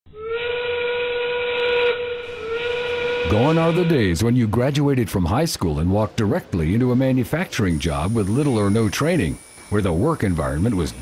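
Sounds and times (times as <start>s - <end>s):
steam whistle blowing: 0.1s - 4.2s
steam hiss: 7.5s - 11.0s.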